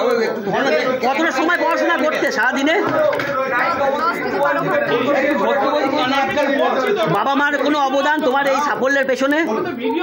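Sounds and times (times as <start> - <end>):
several people talking at once: 0.0 - 10.0.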